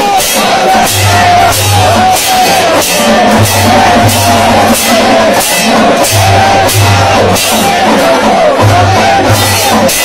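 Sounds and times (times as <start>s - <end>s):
crashing percussion strikes: 0.0s - 10.0s
low drum beat: 0.0s - 10.0s.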